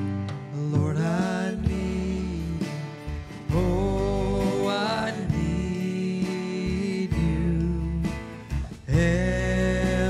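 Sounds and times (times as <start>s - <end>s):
bass and drums: 0.0s - 10.0s.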